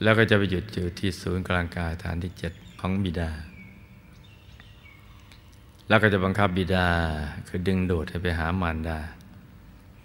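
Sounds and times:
man talking: 0.0 - 3.6, 5.9 - 9.2
faint background noise: 0.0 - 10.0.

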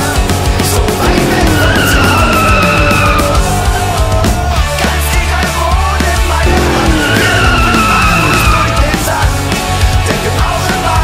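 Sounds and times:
loud rock music: 0.0 - 11.0
car tyres squealing: 1.0 - 5.0, 6.3 - 9.4.

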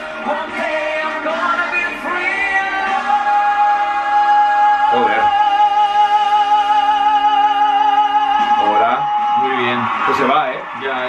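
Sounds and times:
backing music: 0.0 - 11.0.

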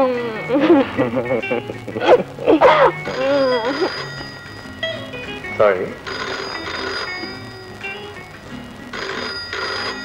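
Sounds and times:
background music: 0.0 - 10.0
telephone bell ringing: 3.1 - 8.0, 8.9 - 10.0.

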